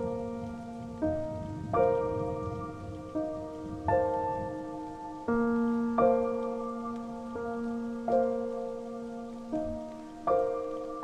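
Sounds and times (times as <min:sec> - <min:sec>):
slow solo piano waltz: 0:00.0 - 0:11.0
soft falling rain: 0:00.0 - 0:11.0.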